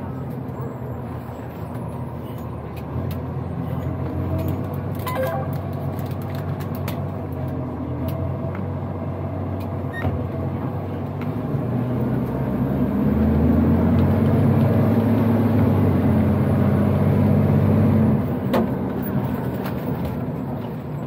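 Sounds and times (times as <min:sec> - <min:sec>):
diesel truck engine from cab: 0:00.0 - 0:21.0.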